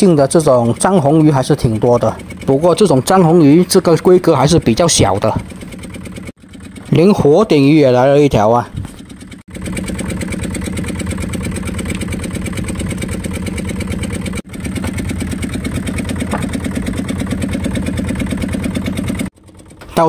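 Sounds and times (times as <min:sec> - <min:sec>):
boat engine chugging: 0:00.0 - 0:20.0.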